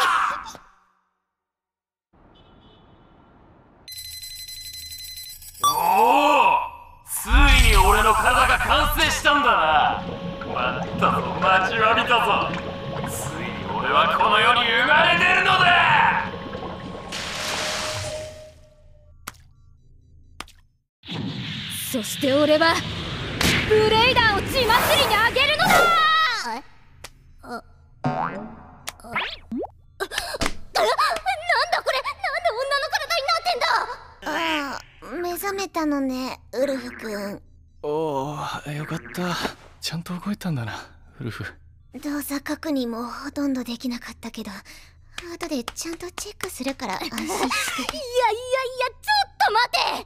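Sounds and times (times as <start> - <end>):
low hum: 7.2 - 17.4
cartoon boing sound effects: 28.0 - 29.7, 38.8 - 39.4.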